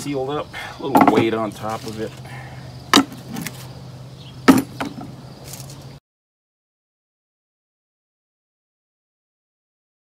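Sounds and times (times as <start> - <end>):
wooden boards knocking: 0.9 - 1.4, 2.9 - 3.5, 4.5 - 5.1.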